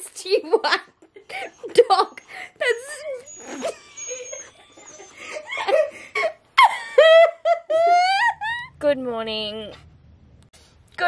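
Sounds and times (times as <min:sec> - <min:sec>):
woman laughing: 0:00.3 - 0:08.8.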